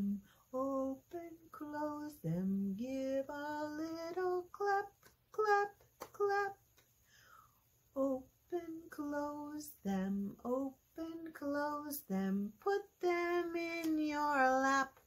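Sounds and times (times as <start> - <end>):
woman singing slowly: 0.0 - 6.6, 7.9 - 15.0.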